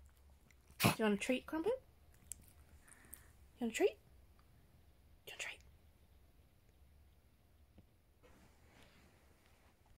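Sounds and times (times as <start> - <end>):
faint low hum: 0.0 - 9.9
person whispering: 5.2 - 5.8.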